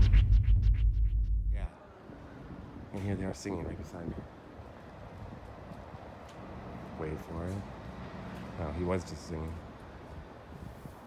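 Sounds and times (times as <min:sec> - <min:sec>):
outdoor background noise: 0:00.0 - 0:11.0
faint footsteps on pavement: 0:02.8 - 0:11.0.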